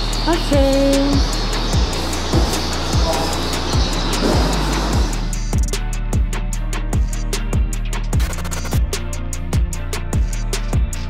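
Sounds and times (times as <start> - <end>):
low kick drum: 0.0 - 8.9
held bass: 0.0 - 11.0.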